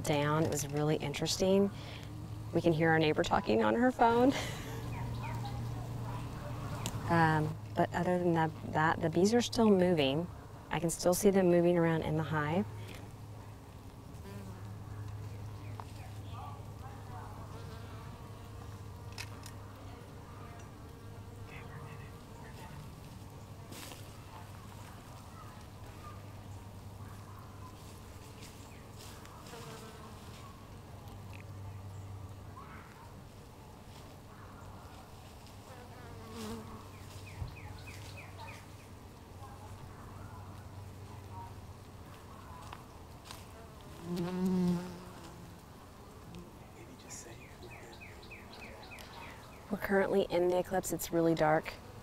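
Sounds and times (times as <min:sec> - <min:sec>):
low hum of honeybees: 0:00.0 - 0:52.0.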